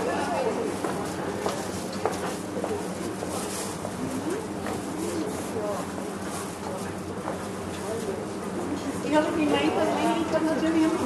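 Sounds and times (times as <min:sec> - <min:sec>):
background hubbub: 0:00.0 - 0:11.0
people chattering: 0:00.0 - 0:11.0.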